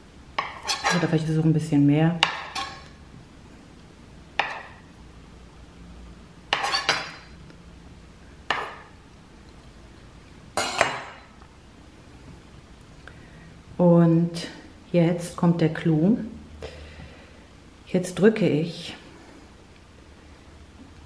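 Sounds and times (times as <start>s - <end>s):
knife cutting soft food: 0.4s - 1.1s, 6.5s - 7.2s.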